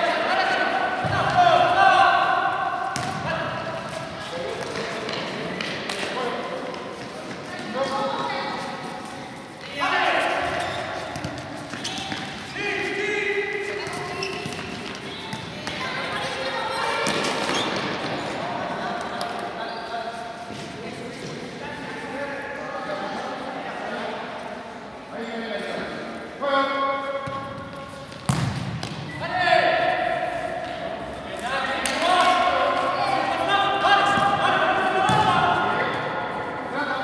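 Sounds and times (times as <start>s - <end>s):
ball kicked and bouncing: 3.0s - 3.2s, 27.2s - 29.0s.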